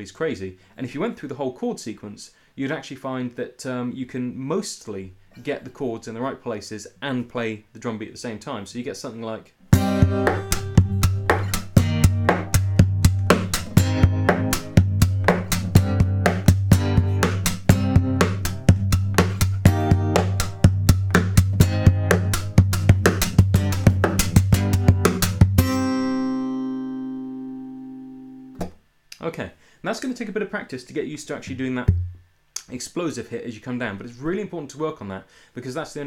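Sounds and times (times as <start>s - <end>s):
percussive acoustic guitar: 9.7s - 26.8s
guitar chord ringing: 9.7s - 28.6s.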